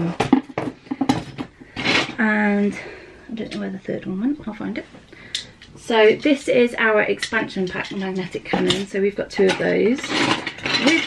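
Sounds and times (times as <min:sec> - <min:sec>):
marbles clattering on desk: 0:07.2 - 0:11.0.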